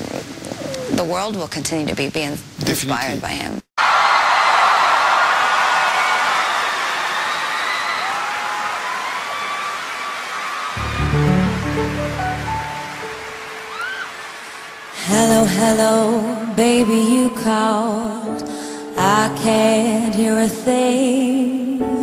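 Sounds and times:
audience cheering and screaming: 3.8s - 18.2s.

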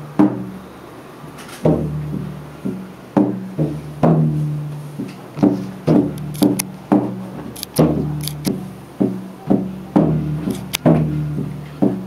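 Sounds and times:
light sharp clicks: 6.1s - 6.7s, 7.6s - 8.6s, 10.5s - 10.9s.

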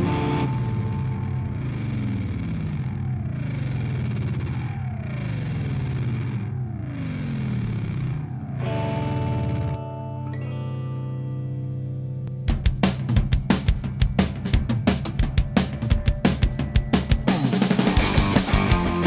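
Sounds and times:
falling pitch sweep: 0.0s - 11.4s
distorted electric guitar: 0.0s - 19.0s
sustained low notes: 0.0s - 19.0s.

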